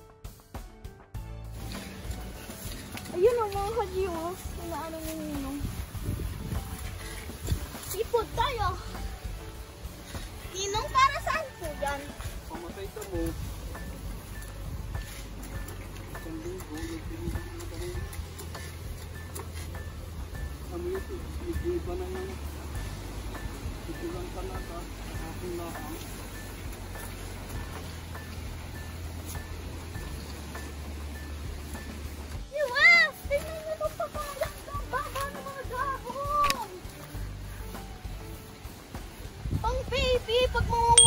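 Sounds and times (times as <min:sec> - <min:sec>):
background music with ticking beat: 0:00.0 - 0:41.0.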